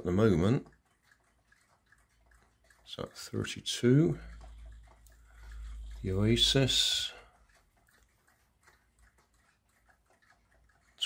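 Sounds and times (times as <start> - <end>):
faint ticks: 0.0 - 11.0
person speaking: 5.9 - 7.4.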